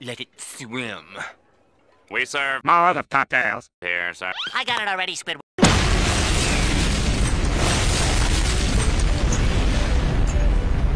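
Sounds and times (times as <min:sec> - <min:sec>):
huge explosion rumbling: 0:05.6 - 0:10.9.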